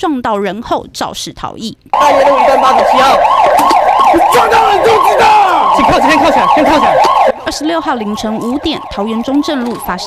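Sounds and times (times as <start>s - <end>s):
police siren yelping: 1.9s - 10.0s.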